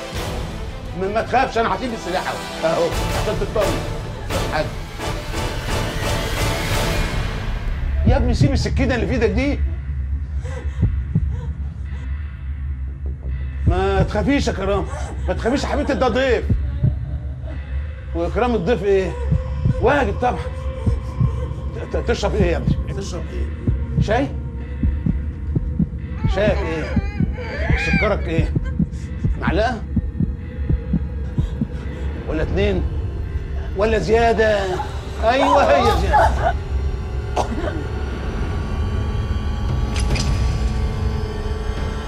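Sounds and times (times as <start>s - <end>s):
low throbbing drone: 0.0s - 42.0s
heartbeat-like thumps: 7.7s - 17.6s, 19.2s - 35.2s
heartbeat-like double pulse: 10.1s - 12.0s, 23.6s - 31.8s.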